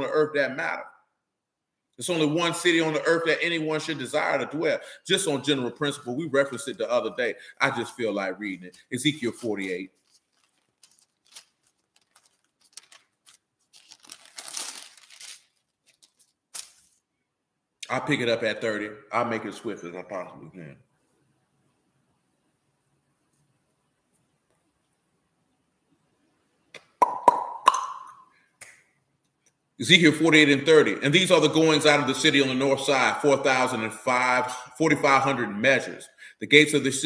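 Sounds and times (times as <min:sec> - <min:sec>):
book pages rustling: 0:08.7 - 0:17.0.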